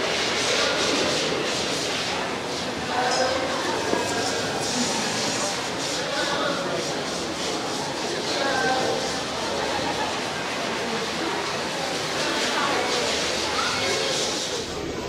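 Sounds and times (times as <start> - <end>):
indistinct chatter of people: 0.0 - 15.0
steady noisy hiss: 0.0 - 15.0.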